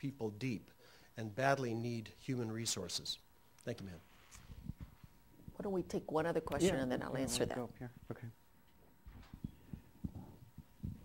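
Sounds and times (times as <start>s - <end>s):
microphone handling thumps: 9.0s - 11.0s.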